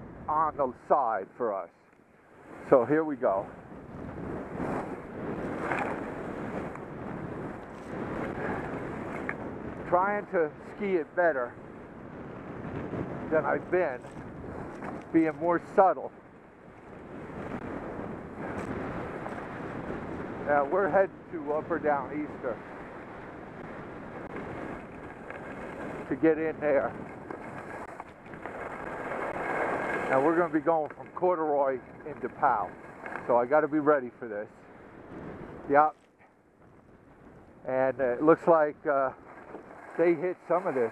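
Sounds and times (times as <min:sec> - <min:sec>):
wind rushing across microphone: 0:00.0 - 0:40.9
skis sliding on snow: 0:04.3 - 0:06.7, 0:13.4 - 0:15.8, 0:24.5 - 0:33.8, 0:38.2 - 0:40.9.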